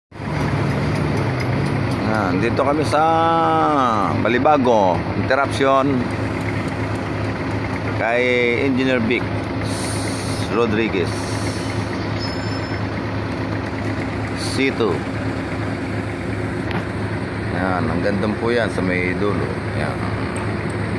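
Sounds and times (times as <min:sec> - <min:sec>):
heavy engine idling: 0:00.1 - 0:20.9.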